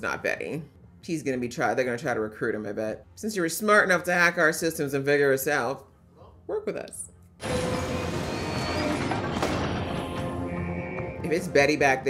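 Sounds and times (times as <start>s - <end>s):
alarm blaring: 7.4s - 12.0s.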